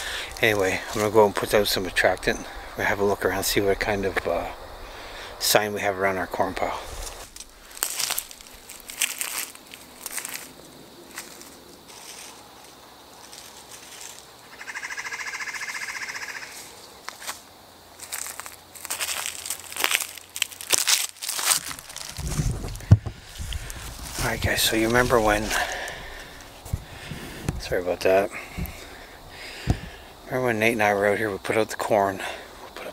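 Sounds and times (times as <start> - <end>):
footsteps crunching through dry leaves: 6.8 - 29.9.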